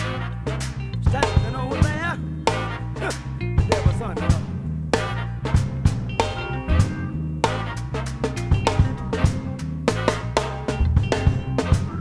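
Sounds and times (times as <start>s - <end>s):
bass line: 0.0s - 12.0s
drum kit funk groove: 0.0s - 12.0s
voice over backing track: 0.9s - 4.6s.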